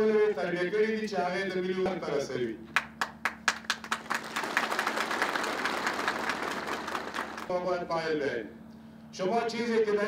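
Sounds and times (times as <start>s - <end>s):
audience applause: 3.0s - 7.5s.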